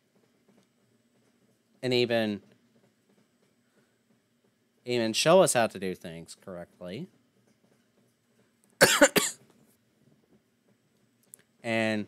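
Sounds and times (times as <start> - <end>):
man coughing: 8.8 - 9.4.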